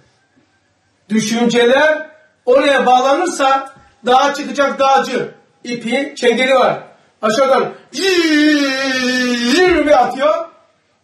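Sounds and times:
man holding long vowel: 7.9 - 10.2.

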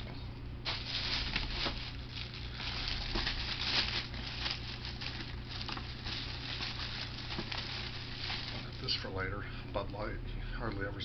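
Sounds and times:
plastic bag rustling: 0.6 - 9.2.

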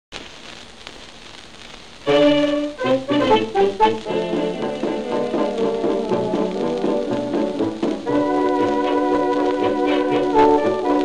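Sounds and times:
record surface hiss and crackle: 0.1 - 11.0.

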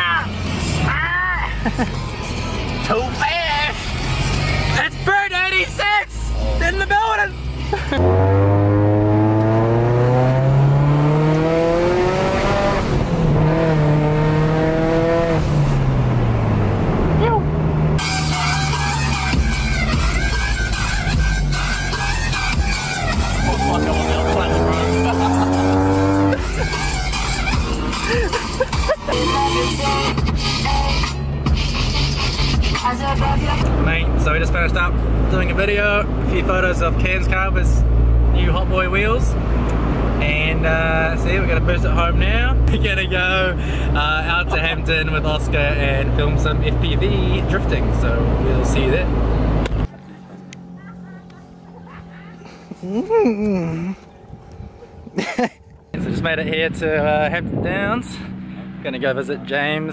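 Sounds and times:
car engine accelerating: 0.0 - 59.9.

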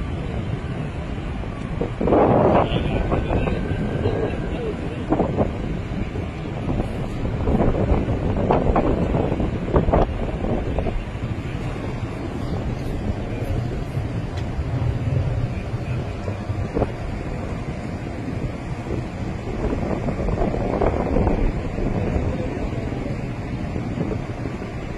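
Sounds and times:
wind rumbling on microphone: 0.0 - 24.9.

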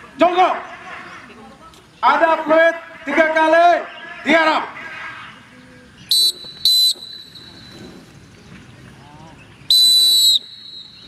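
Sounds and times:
pea whistle blasts: 6.1 - 7.8, 9.7 - 11.0.

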